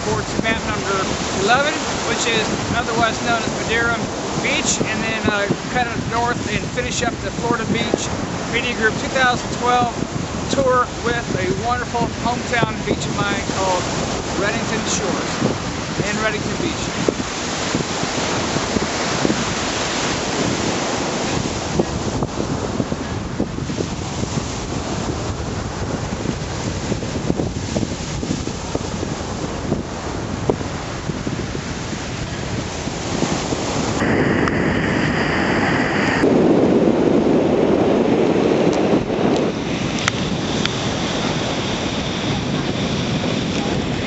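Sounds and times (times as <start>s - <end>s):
small waves breaking on sand: 0.0s - 44.0s
wind on microphone: 0.0s - 44.0s.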